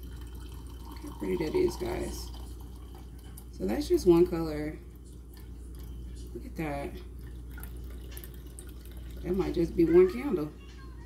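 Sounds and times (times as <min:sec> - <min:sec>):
wax trickling into glass jar: 0:00.0 - 0:09.9
steady low hum: 0:00.0 - 0:11.0.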